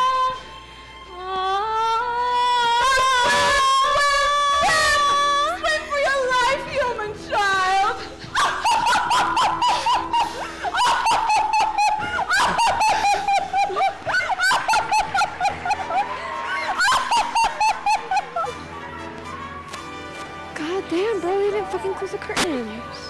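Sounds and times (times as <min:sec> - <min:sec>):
musical accompaniment: 0:09.4 - 0:23.0.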